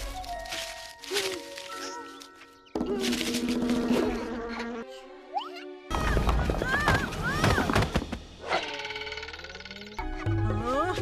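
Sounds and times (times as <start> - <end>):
cartoon bee buzzing: 2.9 - 5.8.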